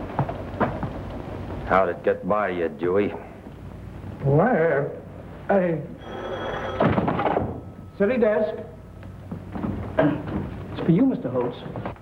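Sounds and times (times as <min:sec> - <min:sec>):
telephone bell ringing: 0:06.0 - 0:07.0.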